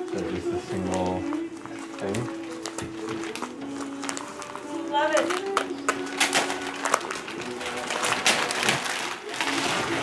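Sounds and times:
background music: 0:00.0 - 0:10.0
paper crinkling and rustling: 0:00.0 - 0:10.0.

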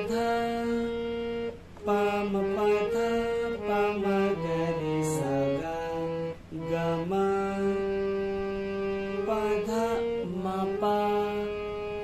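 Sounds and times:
harmonium playing slow melody: 0:00.0 - 0:12.0.

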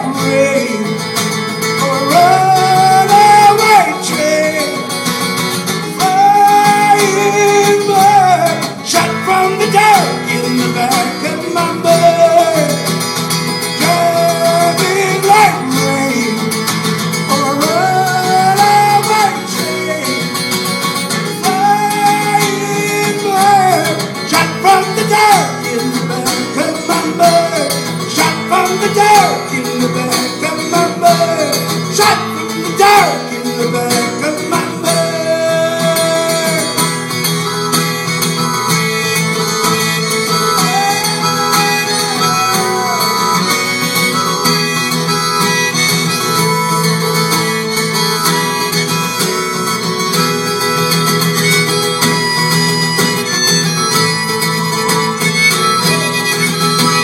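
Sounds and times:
acoustic guitar accompaniment: 0:00.0 - 0:57.0
harmonica solo: 0:00.0 - 0:57.0.

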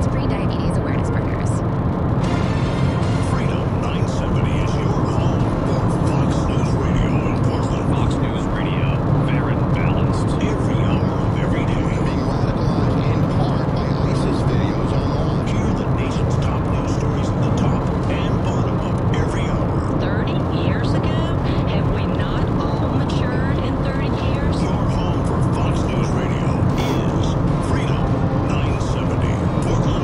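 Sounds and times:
car radio voice over music: 0:00.0 - 0:01.6, 0:02.3 - 0:30.0
road and engine drone: 0:00.0 - 0:30.0.

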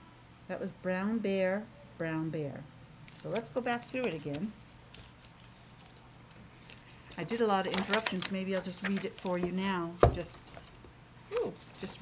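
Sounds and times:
book pages rustling and clicking: 0:03.1 - 0:09.7.

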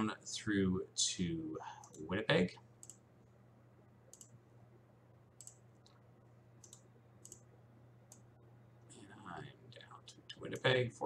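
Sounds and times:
low steady hum: 0:00.0 - 0:11.0
computer mouse clicks: 0:02.8 - 0:03.0, 0:04.1 - 0:04.4, 0:05.4 - 0:06.0, 0:06.6 - 0:07.5, 0:08.1 - 0:08.3.

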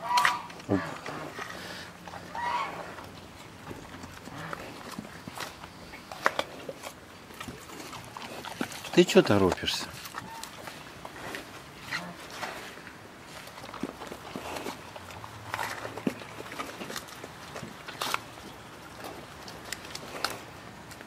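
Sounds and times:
bear cub crunching fruit: 0:00.0 - 0:21.0.

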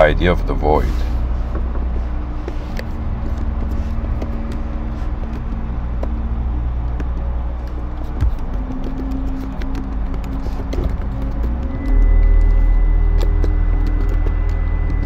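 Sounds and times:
ambient music drone: 0:00.0 - 0:15.0.

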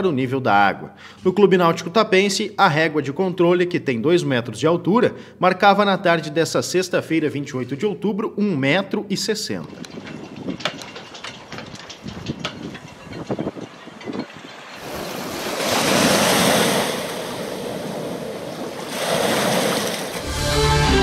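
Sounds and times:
wind: 0:07.0 - 0:20.4
sharp clicks and knocks: 0:09.6 - 0:15.1
waves washing over sandy shore: 0:14.5 - 0:20.3.

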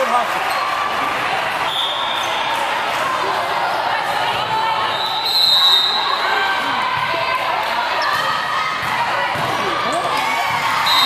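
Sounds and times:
many voices: 0:00.0 - 0:11.0
referee's whistle blast: 0:04.9 - 0:06.1
balls struck and bouncing: 0:08.1 - 0:10.8.

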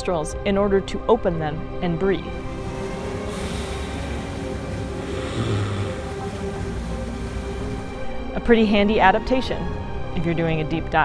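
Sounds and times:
background music with drone: 0:00.0 - 0:11.0
seal breathing through nostrils: 0:02.6 - 0:08.1.

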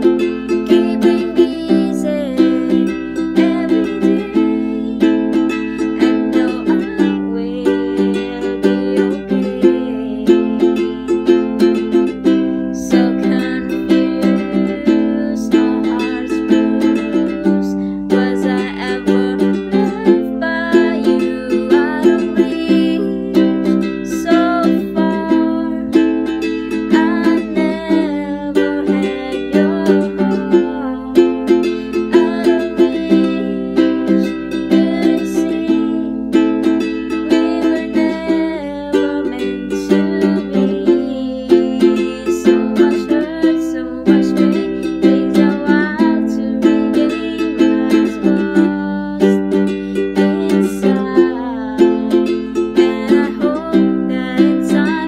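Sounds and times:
ukulele strumming chords: 0:00.0 - 0:55.0
woman singing: 0:00.0 - 0:55.0.

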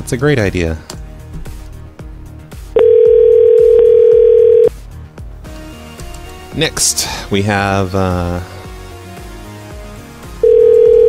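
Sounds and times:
background music with steady beat: 0:00.0 - 0:11.0
telephone ringback tone: 0:02.8 - 0:04.7, 0:10.4 - 0:11.0.

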